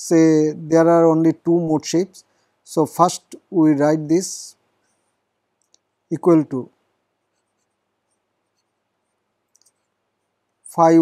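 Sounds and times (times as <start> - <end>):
man speaking: 0.0 - 4.6, 6.1 - 6.7, 10.7 - 11.0
faint ticks: 5.6 - 5.9, 9.5 - 10.0.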